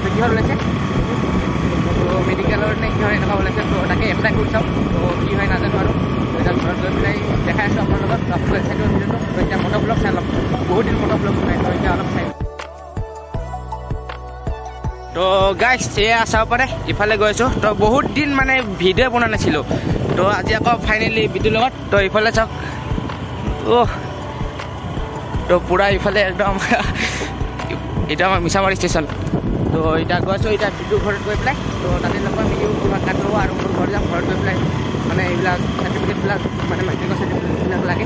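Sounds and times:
motorbike engine: 0.0 - 12.4, 15.1 - 38.0
wind noise: 0.0 - 12.5, 15.4 - 38.0
man talking loudly: 15.1 - 22.6.

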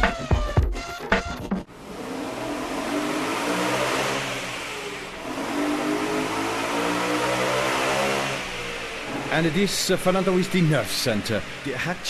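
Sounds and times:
car engine accelerating: 1.6 - 12.0.

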